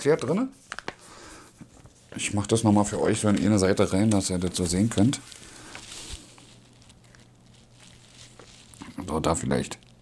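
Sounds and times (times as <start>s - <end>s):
paper booklet rustling: 0.0s - 10.0s
man speaking: 2.1s - 5.3s, 8.8s - 9.8s.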